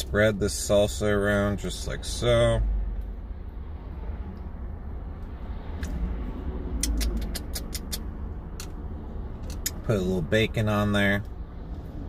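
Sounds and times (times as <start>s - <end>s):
low rumble in car cabin: 0.0s - 12.0s.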